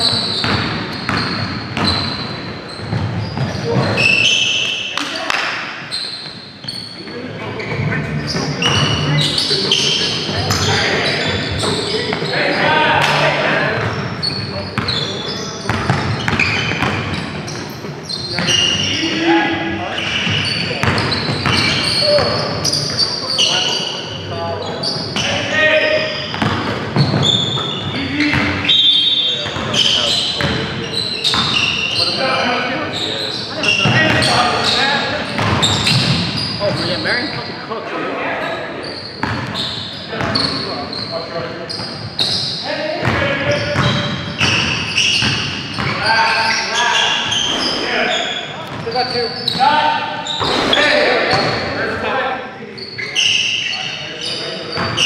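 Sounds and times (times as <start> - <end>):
sneakers squeaking on floor: 0.0 - 37.6, 38.4 - 52.0, 52.6 - 55.0
players calling out: 0.0 - 55.0
basketball bouncing on court: 0.2 - 4.0, 14.8 - 15.0, 15.6 - 17.6, 20.1 - 22.4, 26.3 - 28.6, 29.4 - 31.7, 35.3 - 36.9, 39.2 - 39.6, 43.0 - 46.0.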